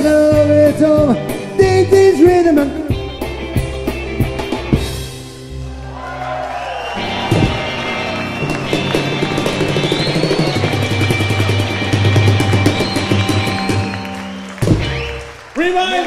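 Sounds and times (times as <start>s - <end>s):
electric guitars holding chords: 7.0s - 15.4s.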